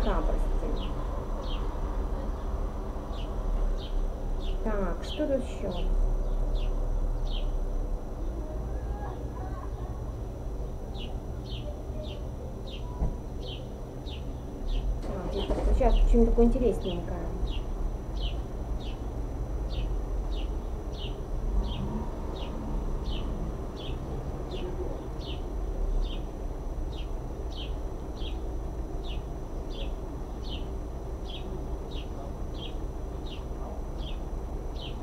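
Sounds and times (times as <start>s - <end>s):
bird chirping: 0.0s - 1.8s, 3.1s - 7.6s, 10.9s - 19.1s, 19.7s - 26.3s, 26.9s - 35.0s
low background rumble: 0.0s - 35.0s.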